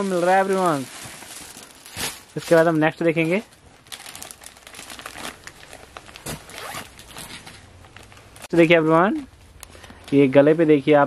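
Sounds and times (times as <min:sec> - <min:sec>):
plastic crinkling: 0:00.0 - 0:10.7
zipper running: 0:06.5 - 0:06.9.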